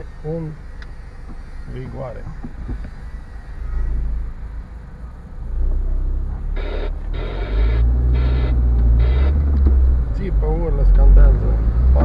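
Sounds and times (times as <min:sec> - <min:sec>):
car engine and tyres rumbling: 0:00.0 - 0:12.0
short high bursts: 0:06.5 - 0:09.4.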